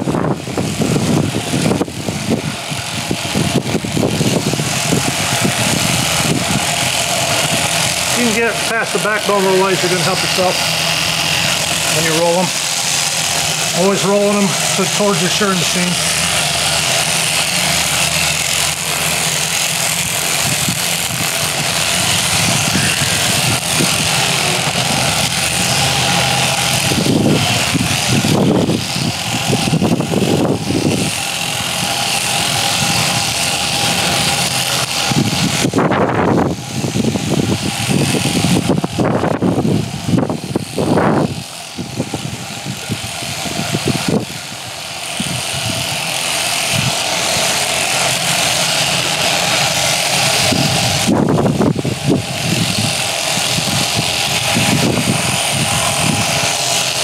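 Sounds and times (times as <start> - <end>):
electric sheep shears running: 0.0 - 57.0.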